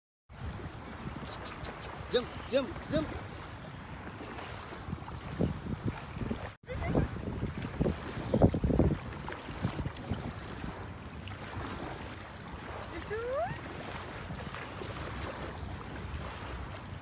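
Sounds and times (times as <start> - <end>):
water splashes: 0.3 - 17.0
wind on microphone: 0.3 - 17.0.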